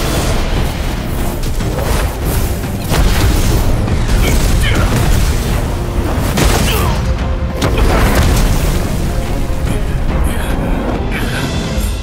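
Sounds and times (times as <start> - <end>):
dramatic background music: 0.0 - 12.0.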